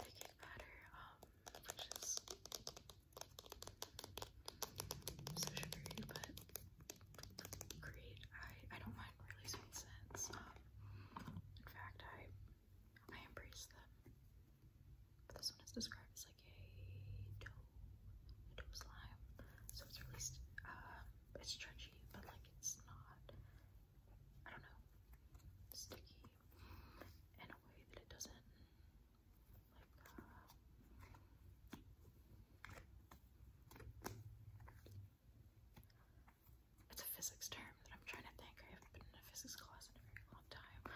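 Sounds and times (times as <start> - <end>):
faint whispering: 0.0 - 14.1, 15.2 - 31.3, 36.8 - 40.9.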